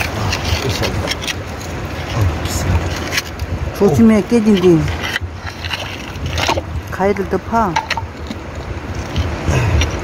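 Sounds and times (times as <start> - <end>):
stick knocking and scraping rock: 0.0 - 10.0.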